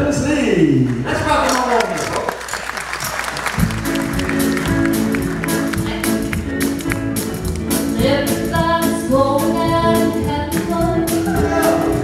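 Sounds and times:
audience applause: 0.9s - 7.7s
acoustic guitar and band chords: 3.0s - 12.0s.

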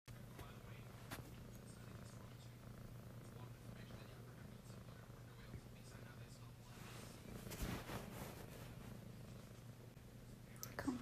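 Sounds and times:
cat purring: 0.1s - 11.0s.

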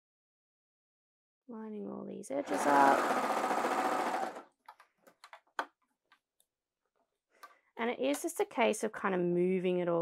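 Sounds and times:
overlocker sewing machine running: 2.4s - 4.4s.

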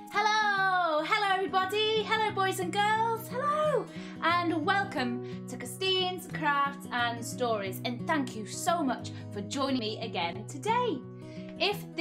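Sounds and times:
woman singing: 0.0s - 11.0s
acoustic guitar music: 0.0s - 12.0s.

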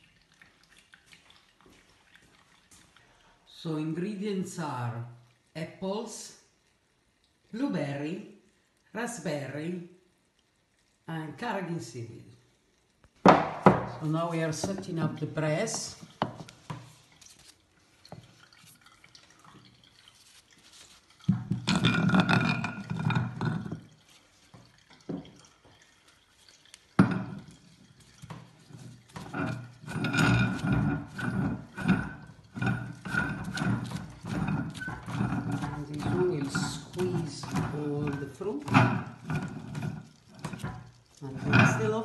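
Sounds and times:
wooden and metal handling noises: 13.2s - 18.6s, 27.0s - 42.0s
people talking: 35.7s - 38.8s, 41.2s - 42.0s.

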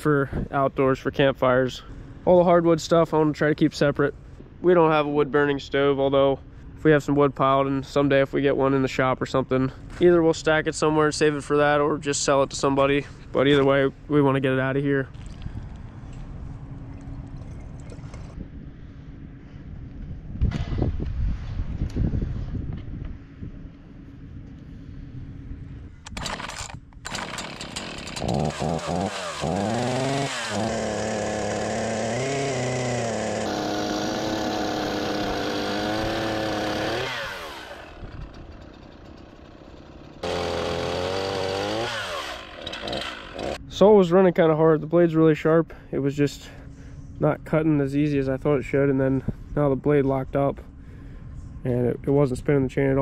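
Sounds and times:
chainsaw revving: 26.1s - 43.6s.

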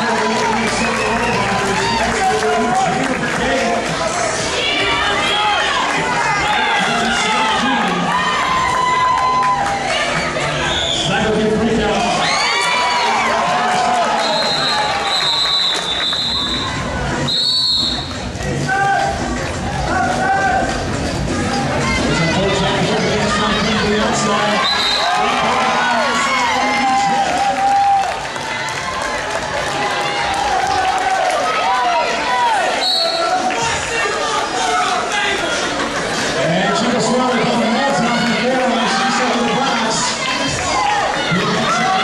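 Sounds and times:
crowd shouting and cheering: 0.0s - 42.0s
referee's whistle blasts: 14.2s - 16.7s, 17.3s - 18.1s, 24.6s - 25.2s, 32.8s - 33.4s.

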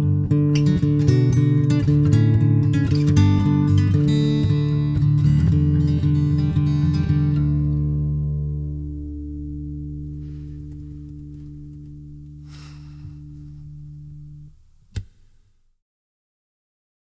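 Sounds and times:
acoustic guitar chord ringing: 0.0s - 14.7s.

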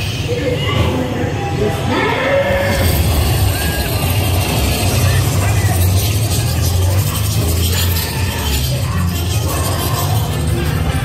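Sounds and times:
indistinct voices: 0.0s - 11.0s
ride music: 0.0s - 11.0s
ride vehicle rumbling: 0.0s - 11.0s.

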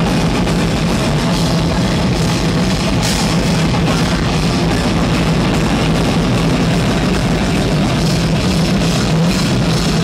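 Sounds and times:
distorted electric guitar: 0.0s - 10.0s
drum kit: 0.0s - 10.0s.

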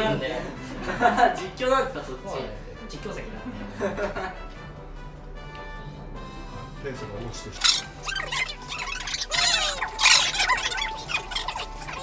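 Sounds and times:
sped-up slurping and voices: 7.6s - 12.0s.

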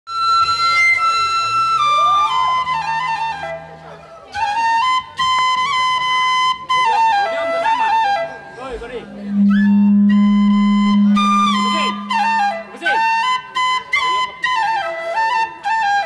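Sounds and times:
bamboo flute melody: 0.1s - 16.0s.

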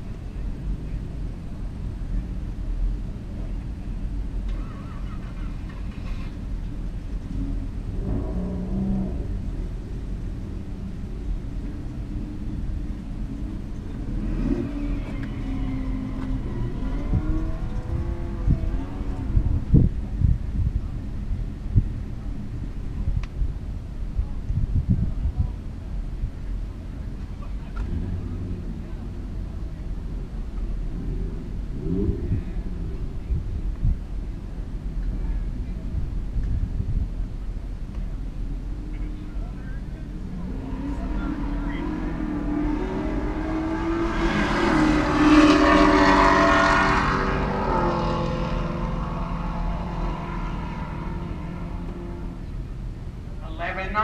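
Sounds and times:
drag race car engines full throttle: 0.0s - 54.0s
low wind rumble: 0.0s - 54.0s.

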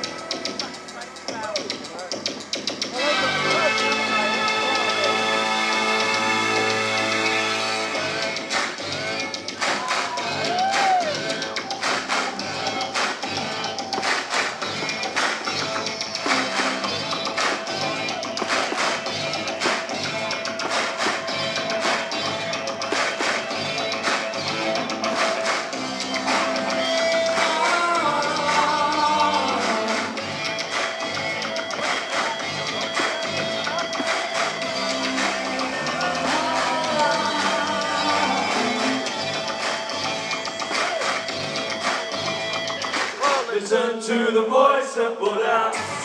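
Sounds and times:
electronic beat: 0.0s - 43.5s.

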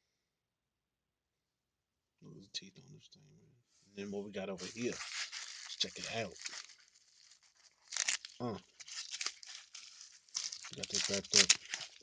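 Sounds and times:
bubble wrap crinkling: 4.6s - 12.0s.

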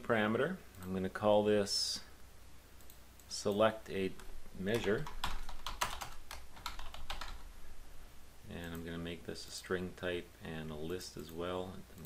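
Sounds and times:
typing on computer keyboard: 4.7s - 7.4s.

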